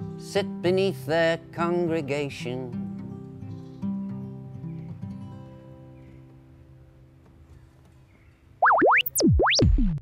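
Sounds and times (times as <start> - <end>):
electronic logo sting: 8.6 - 10.0.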